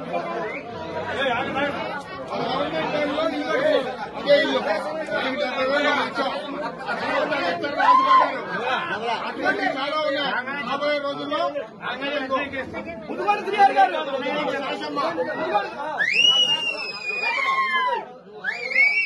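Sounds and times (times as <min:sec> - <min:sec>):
crowd chattering: 0:00.0 - 0:19.0.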